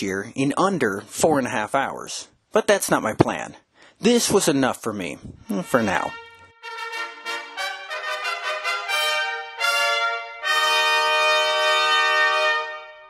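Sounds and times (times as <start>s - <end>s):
trumpet-led brass music: 5.5s - 13.0s.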